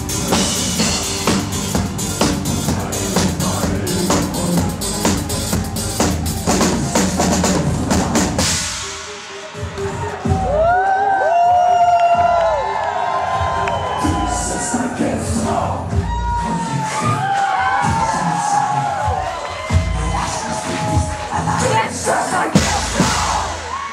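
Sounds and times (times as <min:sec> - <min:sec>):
crowd cheering and screaming: 0:08.8 - 0:21.9, 0:22.5 - 0:23.9.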